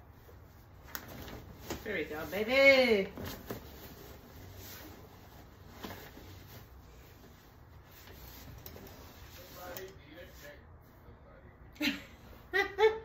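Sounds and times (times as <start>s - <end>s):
fabric rubbing and rustling: 0.0s - 10.9s.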